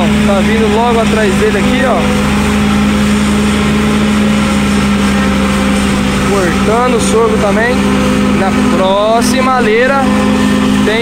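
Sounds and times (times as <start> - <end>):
forage harvester chopping: 0.0 - 11.0
tractor diesel engine under load: 0.0 - 11.0.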